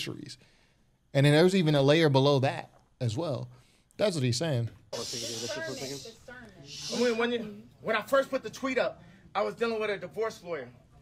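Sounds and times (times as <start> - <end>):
man speaking indistinctly: 4.1 - 6.1, 6.7 - 9.9
breathy hiss: 4.9 - 7.4.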